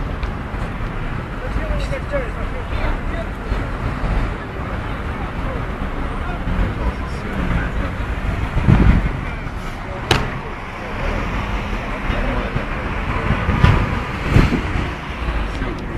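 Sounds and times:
vehicle road noise rumble: 0.0 - 15.9
thump: 10.1 - 10.4.

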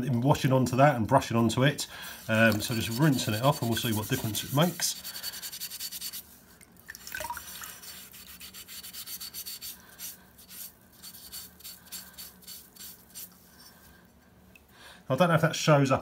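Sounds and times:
wet sponge scrubbing: 2.0 - 6.4, 7.2 - 13.7
water dripping: 6.6 - 7.7.

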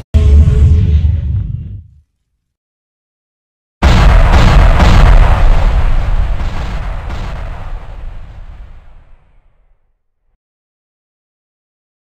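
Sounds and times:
sharp crashing hits: 3.8 - 9.4
deep rumble: 3.9 - 9.2.

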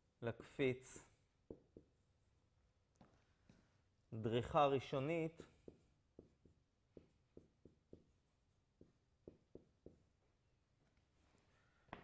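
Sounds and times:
marker writing on whiteboard: 0.9 - 3.7, 4.9 - 11.2.

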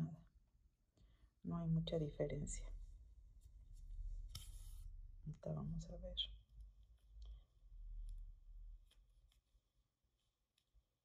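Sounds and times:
thread drawn through ribbon: 3.4 - 5.0.

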